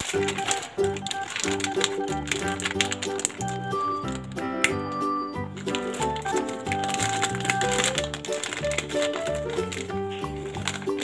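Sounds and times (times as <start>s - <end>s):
background music: 0.0s - 11.0s
crisp clicks: 0.0s - 11.0s.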